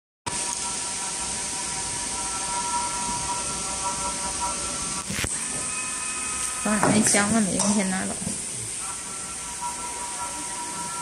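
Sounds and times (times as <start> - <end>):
steady hiss: 0.3 - 11.0.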